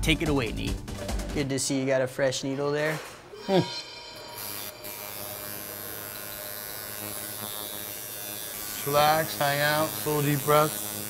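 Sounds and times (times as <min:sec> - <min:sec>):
tattoo machine buzzing: 0:03.4 - 0:11.0.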